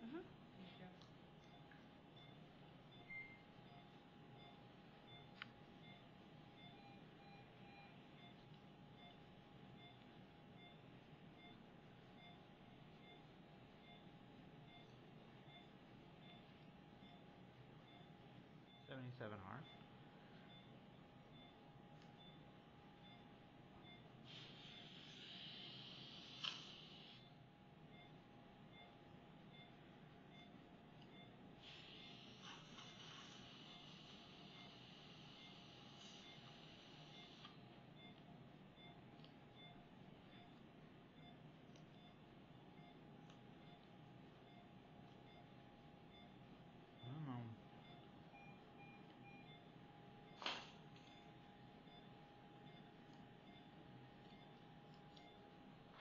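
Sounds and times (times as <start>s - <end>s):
faint steady hum: 0.0s - 56.0s.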